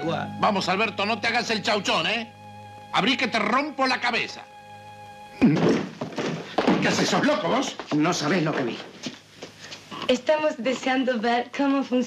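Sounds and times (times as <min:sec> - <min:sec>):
man's voice: 0:00.0 - 0:02.3, 0:02.9 - 0:04.4
held music chord: 0:00.0 - 0:05.6.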